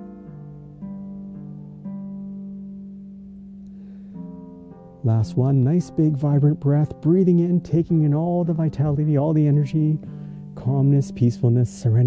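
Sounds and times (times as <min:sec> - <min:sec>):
slow plucked instrumental music: 0:00.0 - 0:12.0.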